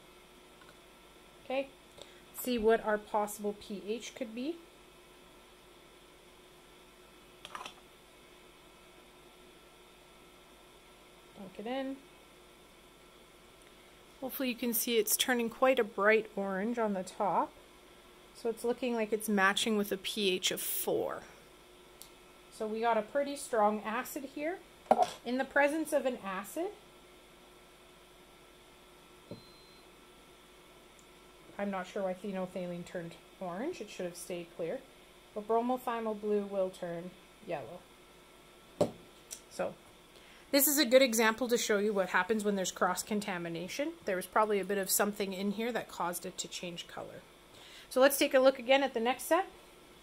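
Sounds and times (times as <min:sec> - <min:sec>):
faint steady hum: 0:00.0 - 0:50.0
plastic bottle set down: 0:24.9 - 0:25.2, 0:38.8 - 0:39.0.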